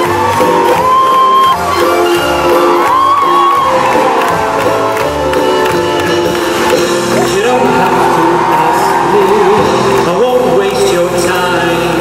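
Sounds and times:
audience cheering and whooping: 0.0 - 10.6
upbeat song over sound system: 0.0 - 12.0.

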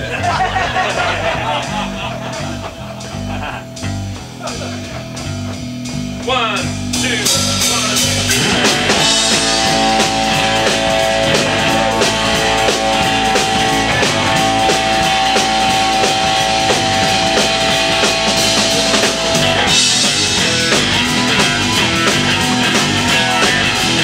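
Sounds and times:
blues-rock band playing: 0.0 - 24.0
cymbals crashing: 7.2 - 23.2
long high held note: 9.0 - 20.0.

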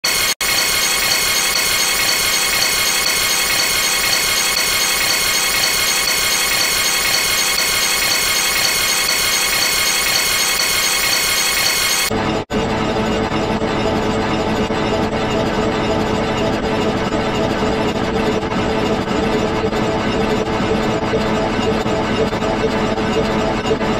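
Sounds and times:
harsh distorted logo soundtrack: 0.0 - 12.2.

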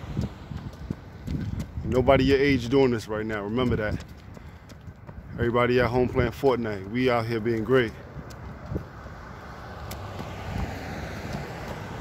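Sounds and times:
cars on the street: 0.0 - 12.0
wind on the microphone: 0.0 - 12.0.

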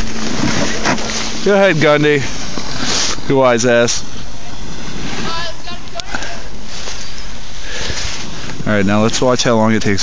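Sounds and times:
board sliding over snow: 0.0 - 4.0, 4.7 - 8.7
wind rushing over microphone: 0.0 - 10.0.

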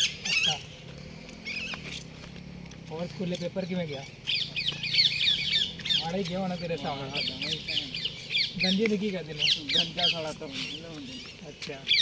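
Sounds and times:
birds chattering: 0.0 - 12.0.

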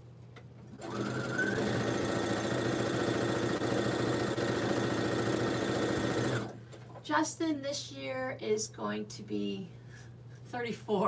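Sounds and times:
sewing machine stitching: 0.7 - 6.6.

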